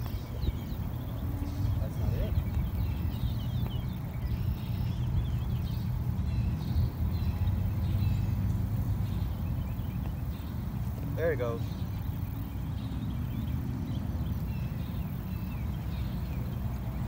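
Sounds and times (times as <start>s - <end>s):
small birds chirping: 0.0s - 17.0s
wind rumble on microphone: 0.0s - 17.0s.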